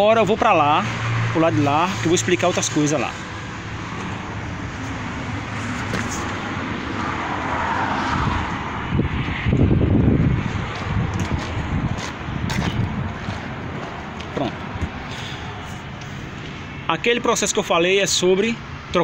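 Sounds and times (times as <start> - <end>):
vehicle noise: 0.0 - 19.0
footsteps: 3.9 - 6.5, 10.5 - 16.6
bumping and rustle: 5.6 - 6.4.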